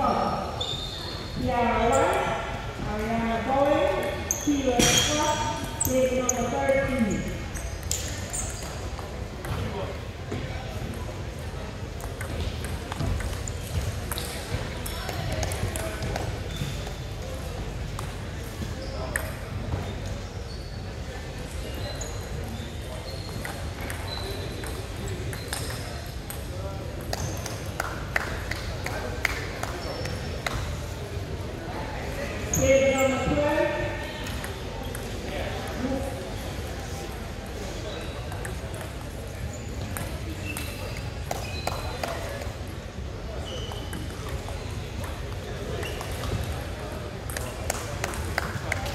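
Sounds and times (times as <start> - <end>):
murmur of voices: 0.0 - 48.9.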